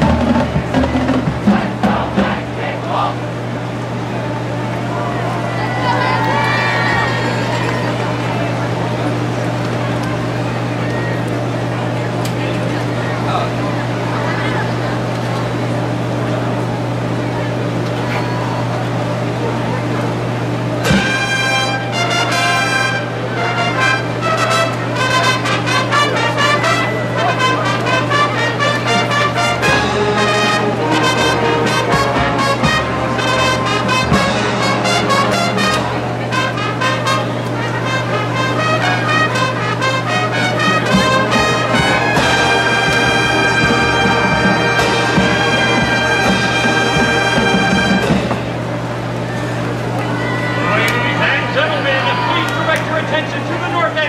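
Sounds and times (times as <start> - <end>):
marching band brass playing: 0.0 - 10.7, 20.3 - 49.7.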